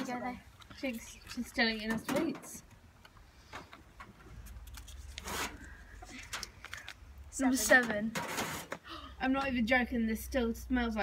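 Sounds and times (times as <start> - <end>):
paper crinkle: 4.4 - 7.0
paper slip rustling: 4.4 - 8.8.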